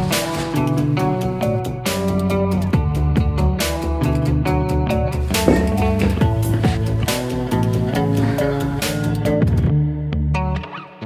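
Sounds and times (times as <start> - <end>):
guitar-led music with drum beat: 5.5 - 6.3.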